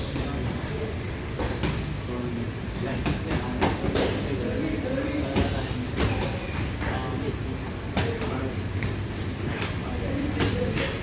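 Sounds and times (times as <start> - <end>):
low rumble of gym fans: 0.0 - 11.0.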